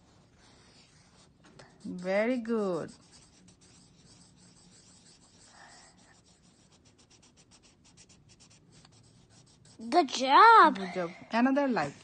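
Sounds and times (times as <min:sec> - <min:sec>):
marker scribbling on paper: 0:00.0 - 0:10.7, 0:11.6 - 0:12.0.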